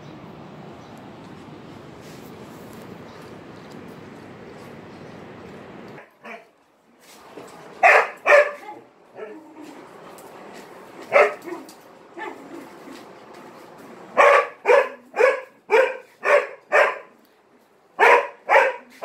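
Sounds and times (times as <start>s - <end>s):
dog barking: 6.0s - 6.5s, 7.8s - 9.4s, 11.1s - 12.5s, 14.2s - 17.2s, 18.0s - 19.0s.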